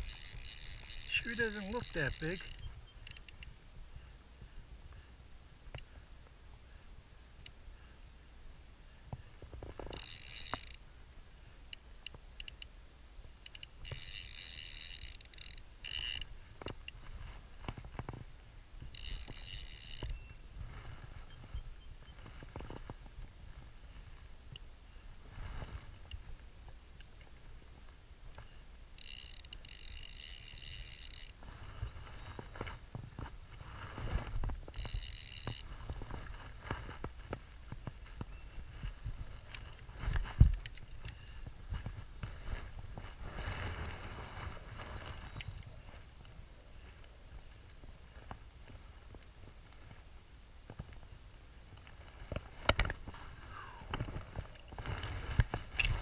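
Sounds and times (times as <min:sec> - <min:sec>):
fly reel ratcheting: 0:00.0 - 0:07.6, 0:09.4 - 0:18.2, 0:18.8 - 0:24.7, 0:27.4 - 0:50.4, 0:52.0 - 0:56.0.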